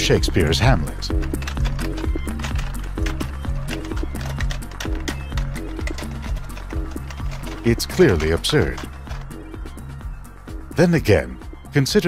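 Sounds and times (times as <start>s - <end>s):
typing keys clacking: 0.0s - 11.4s
background music with low bass: 0.0s - 12.0s.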